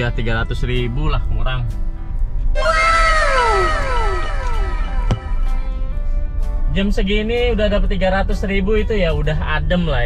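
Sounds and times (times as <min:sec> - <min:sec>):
downward sliding tones effect: 0:02.6 - 0:06.0.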